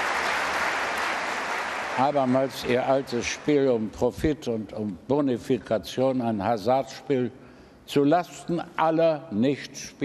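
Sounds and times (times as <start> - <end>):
audience applauding: 0.0 - 3.5.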